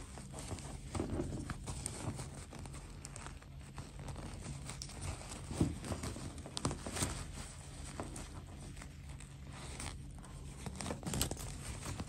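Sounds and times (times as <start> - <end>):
fabric rustling: 0.0 - 12.0
fabric scraping: 0.0 - 12.0.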